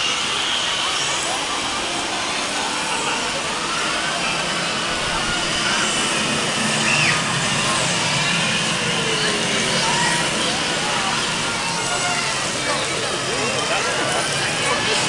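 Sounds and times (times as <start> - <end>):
crowd chatter: 0.0 - 15.0
steady rushing noise: 0.0 - 15.0.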